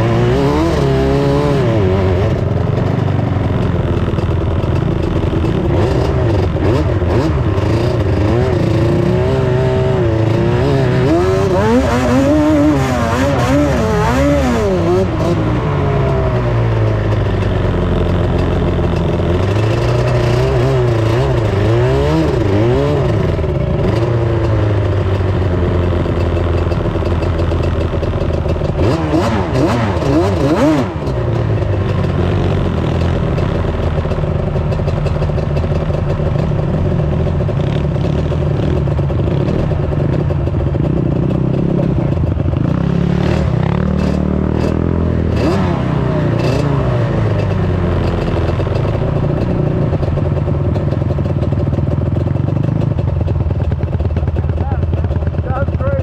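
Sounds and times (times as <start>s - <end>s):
quad engines revving: 0.0s - 56.0s.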